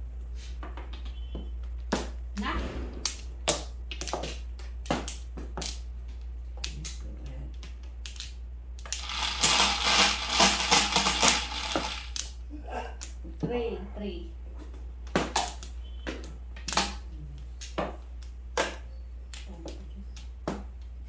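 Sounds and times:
mahjong tiles clattering: 3.1 - 12.3
mahjong tiles clicking: 3.1 - 12.4.

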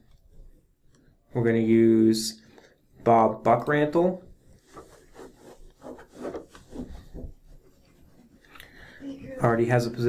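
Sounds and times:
soft rubbing: 4.3 - 10.0.

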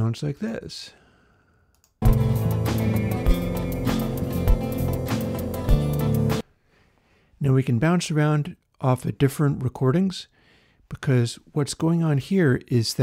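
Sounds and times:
music mix: 2.0 - 6.4.

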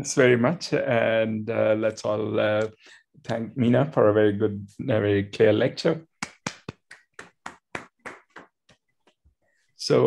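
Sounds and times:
person clapping: 6.2 - 9.2.

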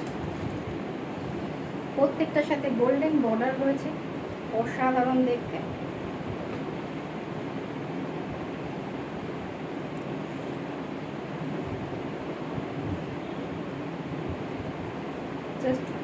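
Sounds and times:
steady rushing room noise: 0.0 - 16.0.

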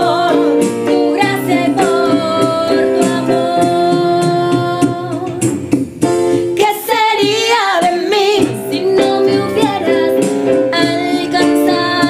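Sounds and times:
woman singing worship song: 0.0 - 5.5, 6.5 - 12.0.

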